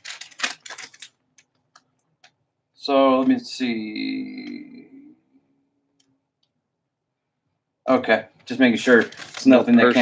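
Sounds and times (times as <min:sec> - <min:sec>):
paper rustling: 0:00.0 - 0:01.8, 0:08.4 - 0:10.0.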